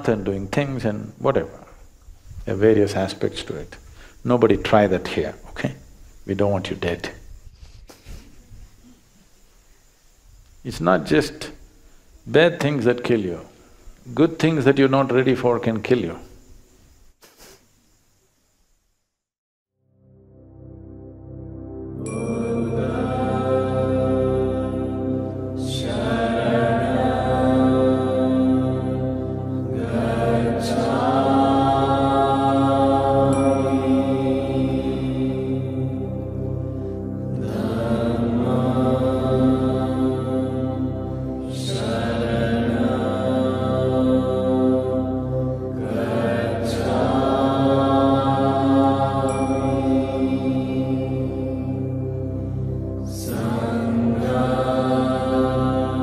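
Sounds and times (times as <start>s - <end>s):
chanted mantra with music: 0.0s - 7.3s, 10.6s - 16.4s, 20.3s - 56.0s
steady low drone: 19.9s - 56.0s.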